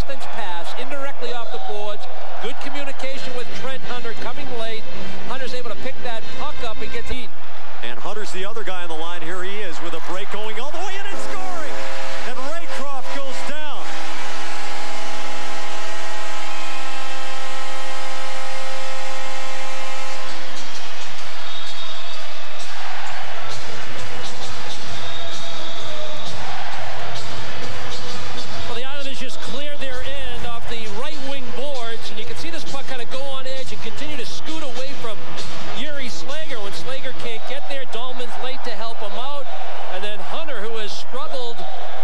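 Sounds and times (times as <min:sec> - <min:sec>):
crowd cheering: 0:00.0 - 0:42.0
goal horn blast: 0:10.1 - 0:28.8.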